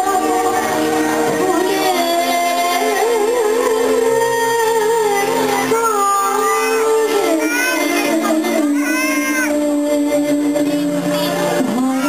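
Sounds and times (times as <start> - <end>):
keyboard accompaniment: 0.0 - 12.0.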